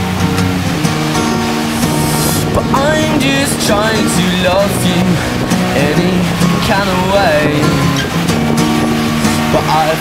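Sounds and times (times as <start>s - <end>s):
acoustic guitar pop song: 0.0s - 10.0s
person singing: 1.6s - 7.9s.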